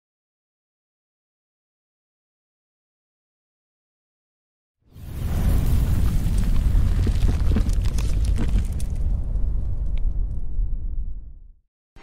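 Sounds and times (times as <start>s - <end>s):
crackling flames and sparks: 4.9s - 10.8s
deep rumble: 5.0s - 11.6s.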